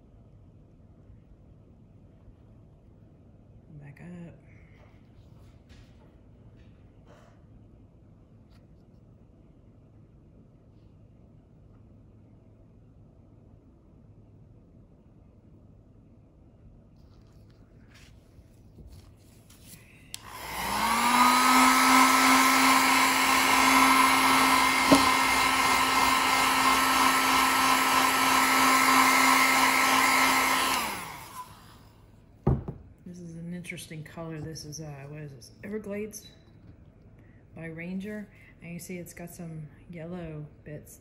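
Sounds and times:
electric blower motor whining: 20.1 - 31.9
rush of air from blower: 20.1 - 31.9
knock: 32.4 - 32.8.

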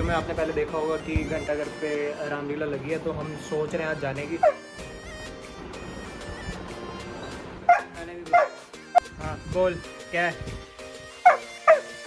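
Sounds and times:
background music: 0.0 - 12.0
dog barking: 7.7 - 8.6, 11.2 - 11.9.

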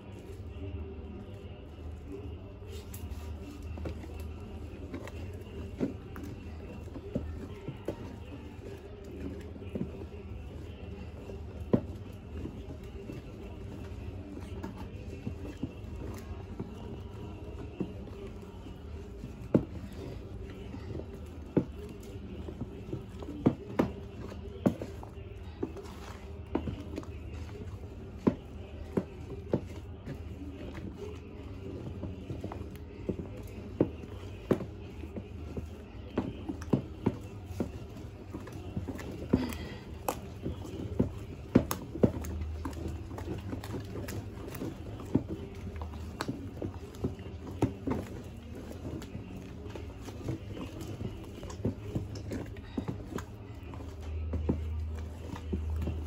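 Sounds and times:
stick stirring thick liquid soap: 0.0 - 56.0.

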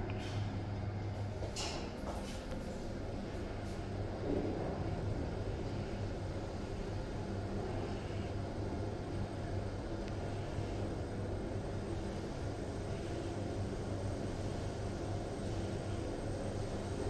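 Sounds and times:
lift travelling hum and rumble: 0.0 - 17.0.

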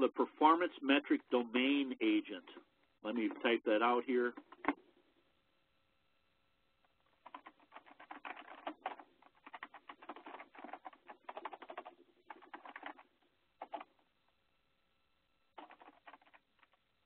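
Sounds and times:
faint keyboard typing: 2.4 - 3.6, 4.2 - 4.8, 6.8 - 14.4, 15.5 - 17.0.

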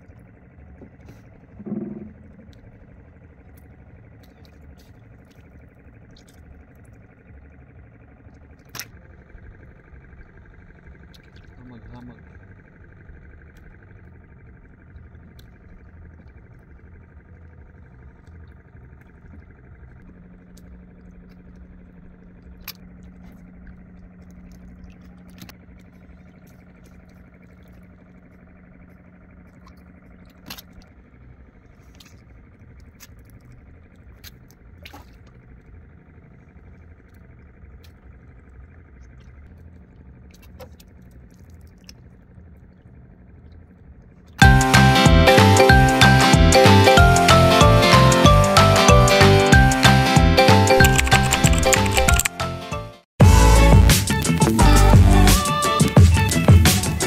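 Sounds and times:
steady low hum: 0.0 - 52.3, 53.2 - 57.0
small boat engine rumble: 0.0 - 57.0.

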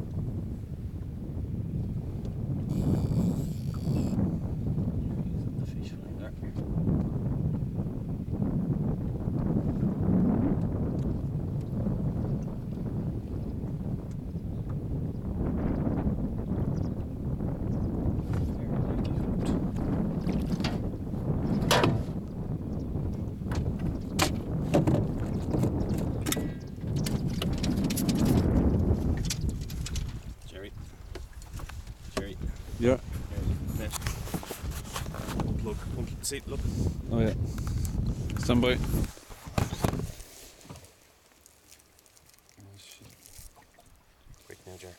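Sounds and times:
wind rumbling on microphone: 0.0 - 44.9.

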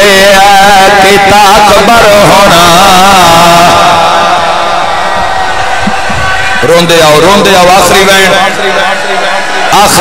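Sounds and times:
man chanting over loudspeaker: 0.0 - 4.8, 6.6 - 10.0.

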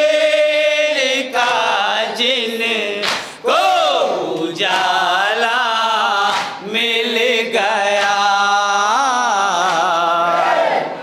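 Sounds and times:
men chanting a lament in unison: 0.0 - 11.0.

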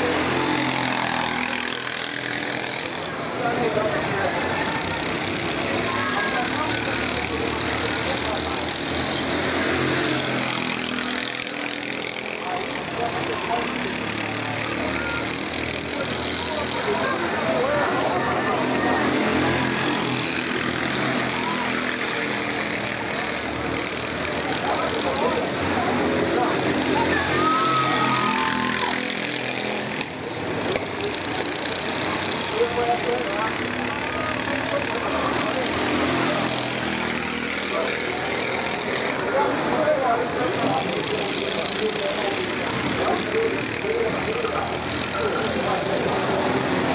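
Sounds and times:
people talking: 0.0 - 46.9
racing kart engines: 0.0 - 46.9.

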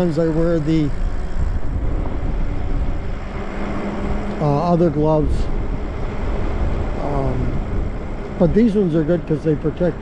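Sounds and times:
tyre and road noise: 0.0 - 10.0
wind rushing over microphone: 0.0 - 10.0.

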